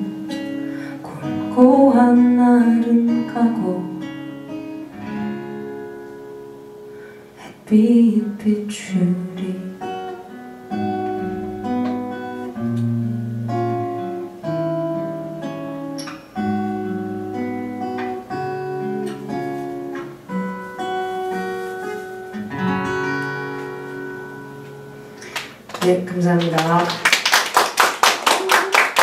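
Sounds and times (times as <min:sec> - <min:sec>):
acoustic guitar picking and strumming: 0:00.0 - 0:27.1.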